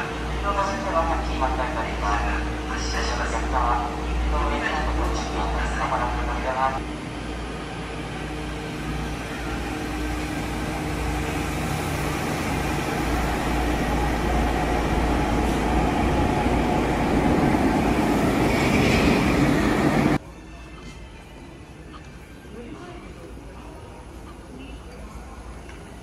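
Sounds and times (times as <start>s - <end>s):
subway train running noise: 0.0s - 26.0s.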